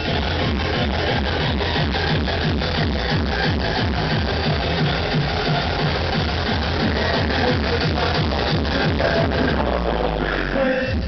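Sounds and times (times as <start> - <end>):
loud dance music with heavy bass: 0.0 - 11.0.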